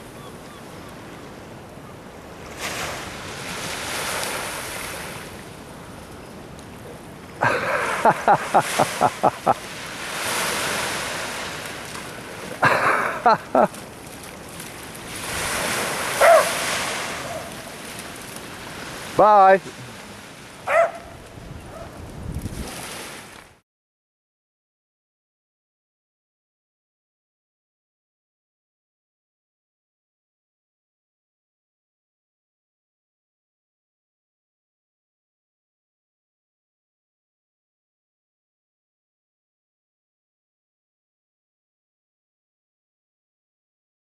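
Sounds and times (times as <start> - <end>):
small waves washing onto sand: 0.9 - 23.6
people laughing: 7.4 - 9.6, 12.6 - 13.8
wind on microphone: 14.4 - 23.4
dog barking: 16.2 - 17.6, 20.6 - 22.0.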